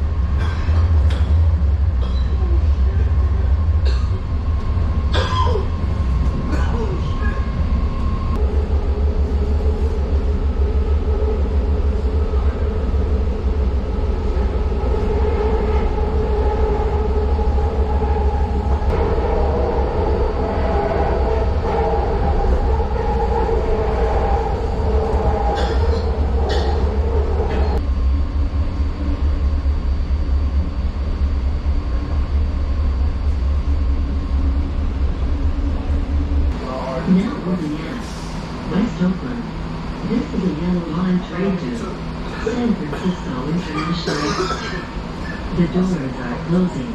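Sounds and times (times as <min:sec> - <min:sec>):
train rumbling: 0:00.0 - 0:46.9.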